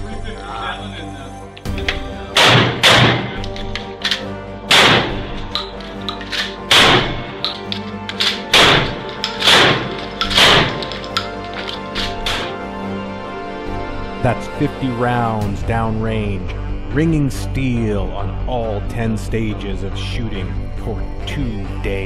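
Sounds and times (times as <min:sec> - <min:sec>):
background music: 0:00.0 - 0:22.0
shotgun blasts: 0:02.3 - 0:03.4, 0:04.7 - 0:05.4, 0:06.7 - 0:07.4, 0:08.5 - 0:10.9.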